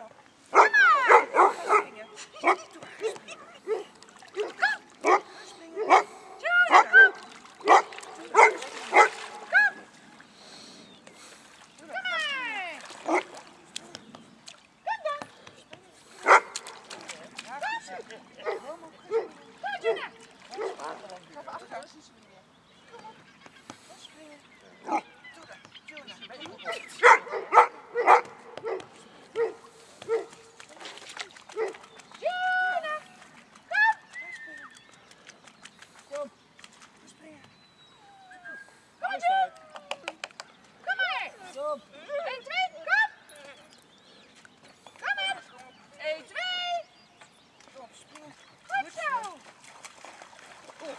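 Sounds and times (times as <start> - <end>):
dog barking: 0.5 - 6.1, 6.7 - 9.2, 16.2 - 16.6, 18.4 - 19.4, 20.5 - 21.0, 26.7 - 30.3, 31.6 - 31.8.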